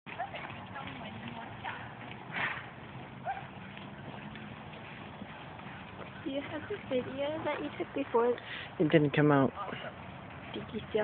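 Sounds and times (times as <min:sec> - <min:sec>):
horse hoofbeats on sand: 0:00.1 - 0:08.4.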